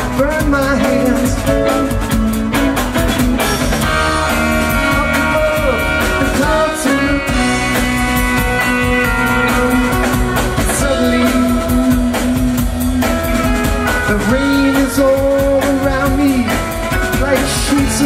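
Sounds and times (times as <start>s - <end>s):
bass guitar: 0.0s - 18.0s
drum kit beat: 0.0s - 18.0s
electric guitar: 0.0s - 18.0s.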